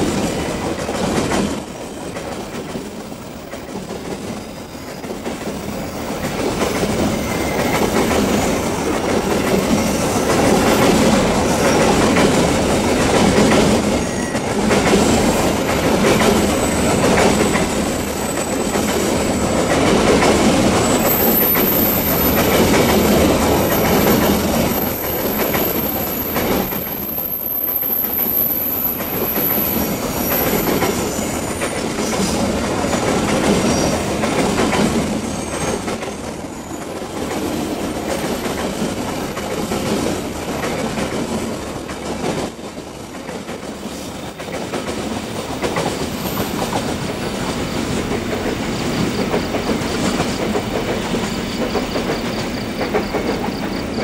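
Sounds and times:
train wheels clattering over rails: 0:00.0 - 0:54.0
high-pitched wheel squeal: 0:07.0 - 0:08.7.

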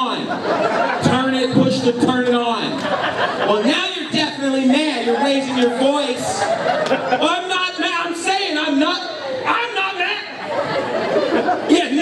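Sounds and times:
man shouting angrily into microphone: 0:03.5 - 0:06.4, 0:07.2 - 0:10.4.

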